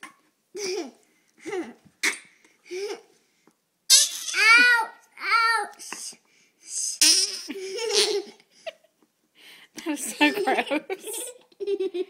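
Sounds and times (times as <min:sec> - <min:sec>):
child laughing loudly: 0:03.9 - 0:05.0, 0:07.0 - 0:08.4.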